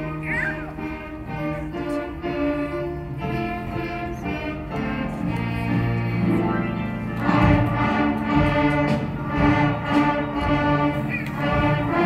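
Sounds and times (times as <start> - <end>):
school band playing sustained notes: 0.0 - 12.0.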